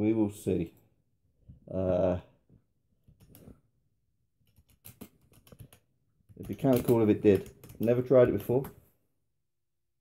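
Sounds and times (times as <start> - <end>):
keyboard and mouse clicks: 3.1 - 3.6, 4.4 - 8.8.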